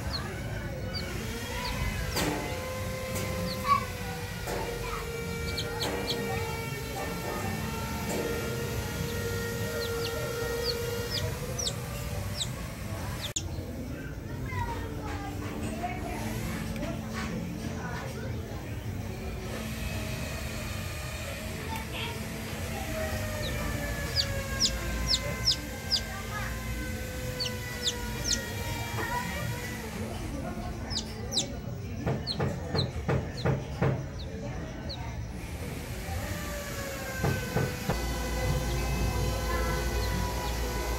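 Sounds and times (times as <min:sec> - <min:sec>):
chick peeping: 0:00.0 - 0:14.2, 0:22.6 - 0:40.9
steady background noise: 0:00.0 - 0:40.9.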